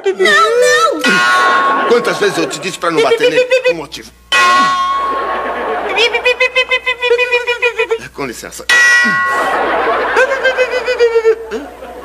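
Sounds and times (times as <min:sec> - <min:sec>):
comic clanging bell: 0:00.9 - 0:02.8, 0:04.3 - 0:05.9, 0:08.7 - 0:10.5.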